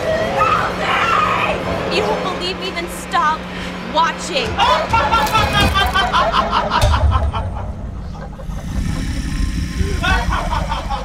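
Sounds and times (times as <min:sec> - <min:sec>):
deep low rumble: 0:06.8 - 0:11.0.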